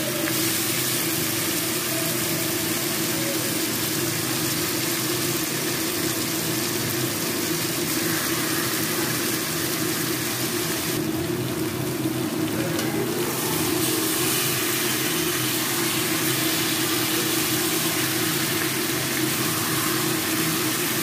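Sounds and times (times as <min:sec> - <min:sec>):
food sizzling in a pan: 0:00.0 - 0:21.0.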